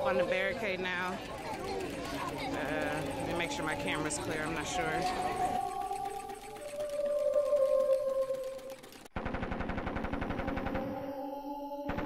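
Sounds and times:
rapid even rattle: 0:01.2 - 0:10.4.

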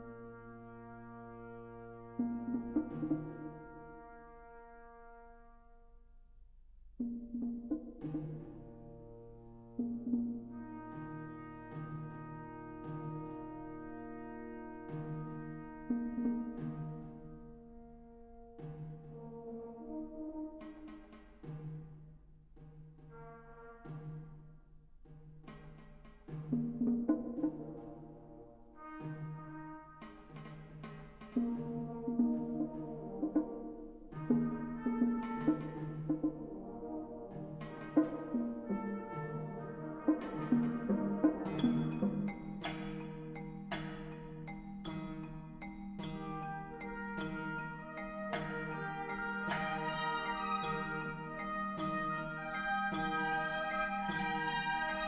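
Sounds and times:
held brass note: 0:00.0 - 0:05.8, 0:10.5 - 0:20.9, 0:31.5 - 0:42.3, 0:46.2 - 0:55.0
timpani: 0:00.0 - 0:55.0.

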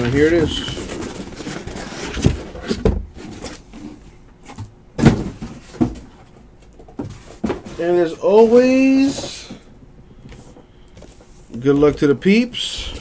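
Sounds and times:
card box knocks and rustles: 0:04.5 - 0:06.1.

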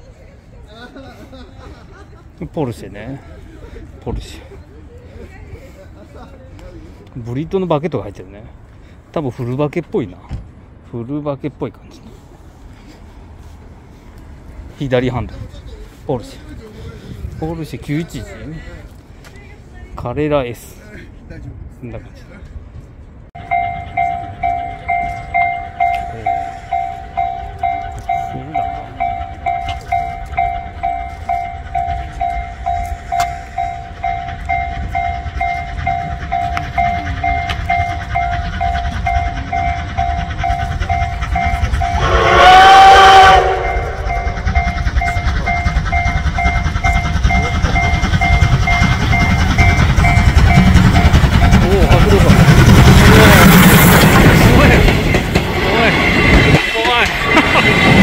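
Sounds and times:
locomotive rumble: 0:12.0 - 0:58.0
level crossing bell beeping: 0:23.4 - 0:51.6
steam whistle: 0:41.5 - 0:44.7.

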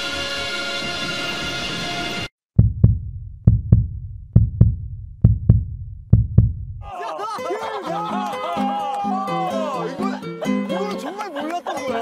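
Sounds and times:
music: 0:00.0 - 0:02.3, 0:07.2 - 0:12.0
heartbeat thumps: 0:02.5 - 0:06.9.

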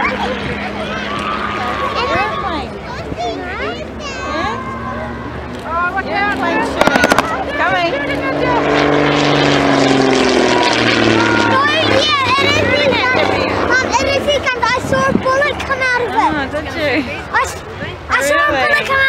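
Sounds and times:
people talking: 0:00.0 - 0:08.8, 0:11.1 - 0:19.0
propeller plane flying past: 0:00.0 - 0:18.8.

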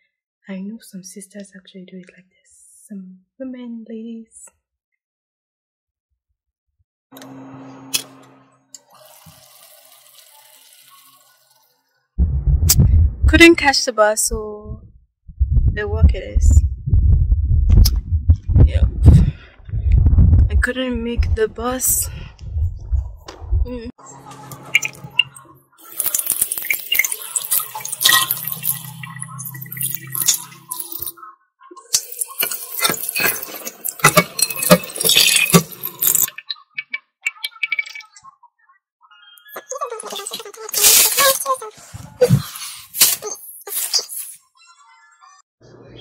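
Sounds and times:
wind buffeting microphone: 0:12.2 - 0:23.9.

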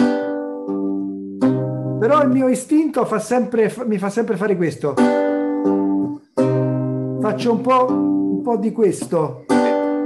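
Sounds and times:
lute notes plucked: 0:00.0 - 0:10.0.

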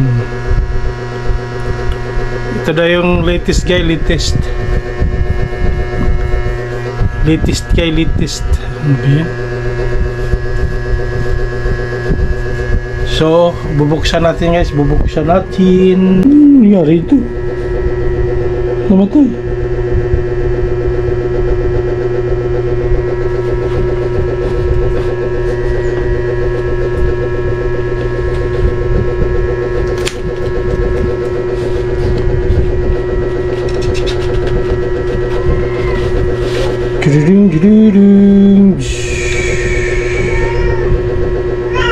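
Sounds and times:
steady loud hum: 0:00.0 - 0:41.9
sharp click: 0:29.9 - 0:30.2.

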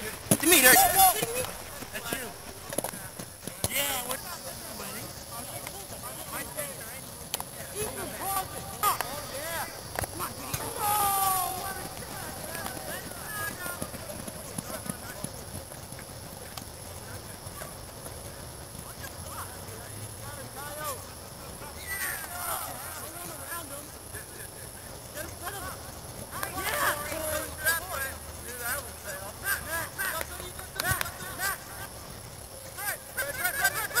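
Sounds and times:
footfalls running on turf: 0:00.0 - 0:34.0
young men shouting: 0:00.4 - 0:02.3, 0:07.8 - 0:14.6, 0:21.6 - 0:23.9, 0:25.5 - 0:32.0
loud yell: 0:10.6 - 0:14.1.

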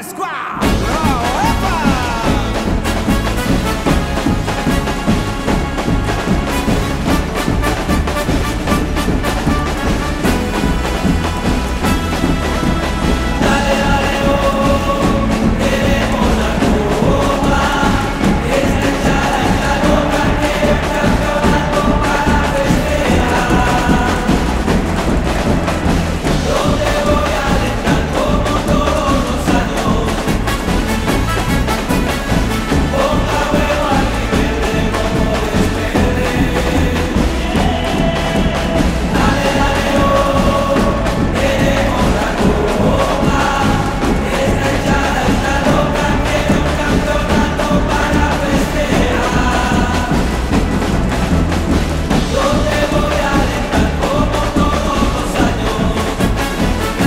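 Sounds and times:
group of voices chanting: 0:00.0 - 0:57.0
marching drum line: 0:00.6 - 0:57.0.

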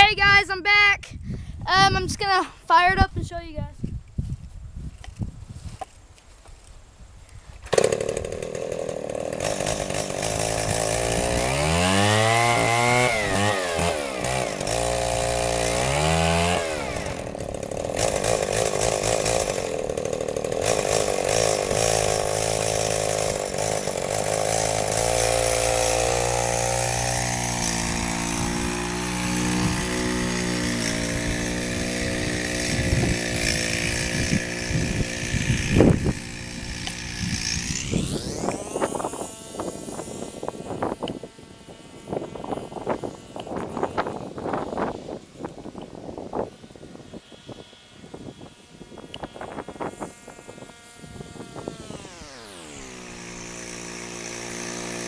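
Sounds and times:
chainsaw engine revving: 0:07.6 - 0:55.0.

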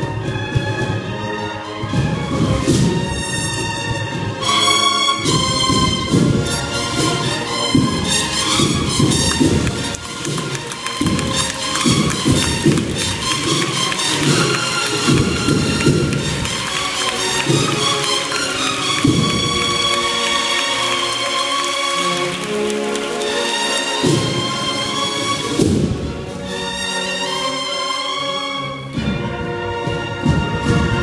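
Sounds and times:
rapid drum strokes: 0:04.0 - 0:20.0
bugles playing: 0:04.1 - 0:25.6.

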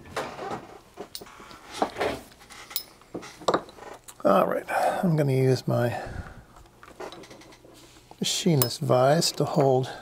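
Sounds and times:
metal tools clinking on wooden bench: 0:01.0 - 0:04.0, 0:08.5 - 0:09.8.

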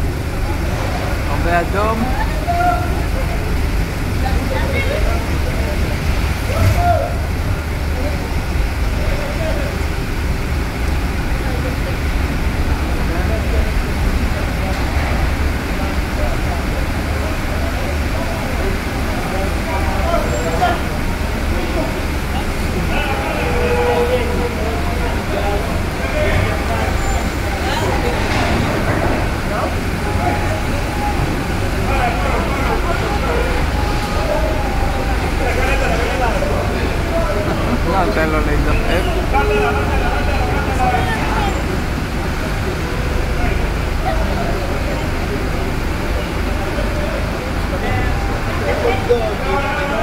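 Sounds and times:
indistinct voices talking: 0:00.0 - 0:50.0
low engine rumble: 0:00.0 - 0:50.0.

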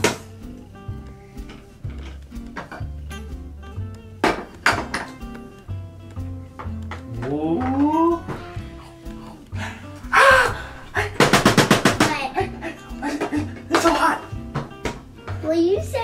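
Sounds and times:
lo-fi music with bass: 0:00.0 - 0:11.3.

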